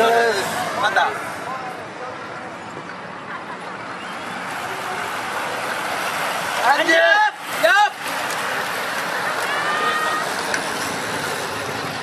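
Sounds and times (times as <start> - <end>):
bicycles passing rushing tyres: 3.7 - 12.0.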